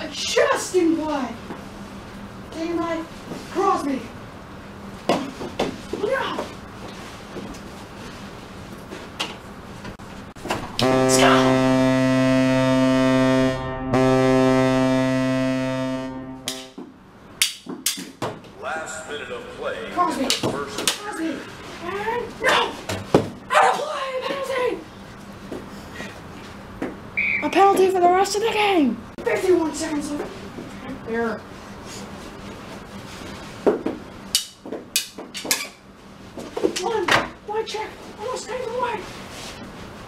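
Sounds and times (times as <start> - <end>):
ice hockey goal horn: 10.8 - 16.8.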